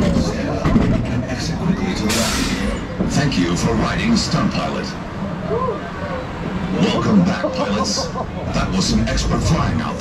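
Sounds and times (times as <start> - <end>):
roller coaster train rumbling: 0.0 - 10.0.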